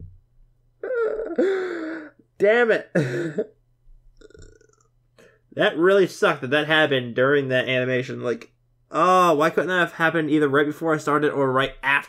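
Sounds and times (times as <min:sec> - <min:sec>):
man groaning in pain: 0:00.8 - 0:02.2.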